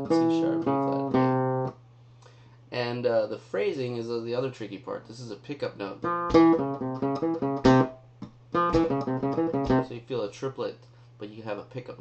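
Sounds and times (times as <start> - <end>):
flamenco guitar plucked notes: 0.0 - 1.7, 6.0 - 9.9.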